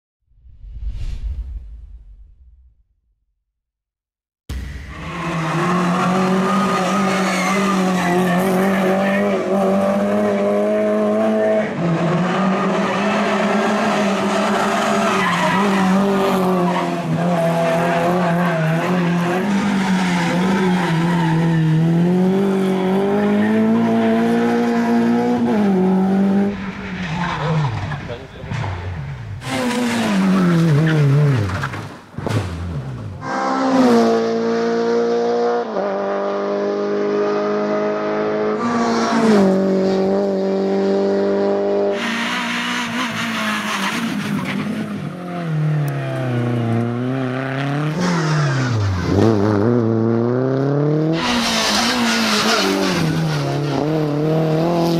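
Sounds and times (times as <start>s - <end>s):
rally car engine revving: 4.5s - 54.9s.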